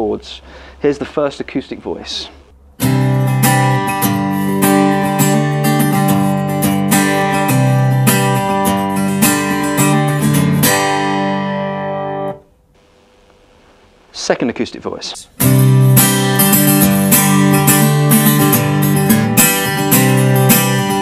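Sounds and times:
acoustic guitar strumming chords: 2.6 - 12.5, 15.4 - 21.0.

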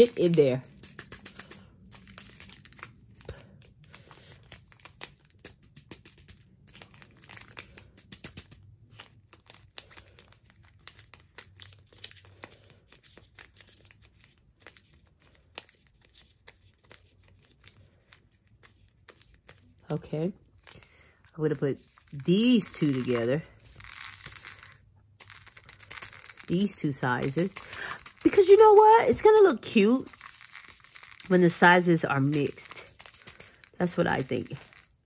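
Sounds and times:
plastic bag crinkling: 0.0 - 35.0
small jewels clicking: 22.0 - 35.0.

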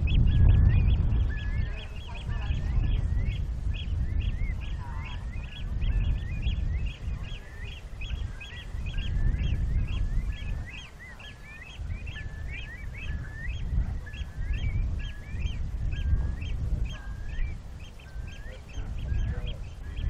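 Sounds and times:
birds calling: 0.0 - 20.0
wind rumble on microphone: 0.0 - 20.0.

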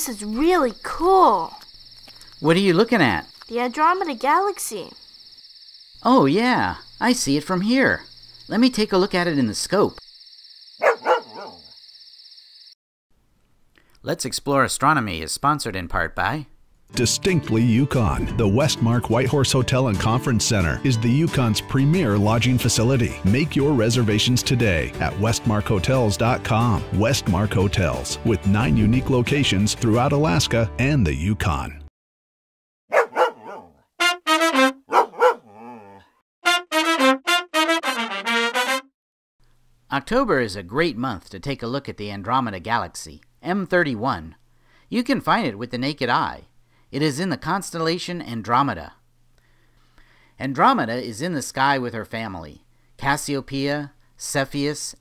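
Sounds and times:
crickets chirping: 0.0 - 12.8
cartoon dog barking: 10.8 - 11.6, 32.9 - 36.1
brass instrument phrase: 34.0 - 34.9, 36.4 - 38.9.

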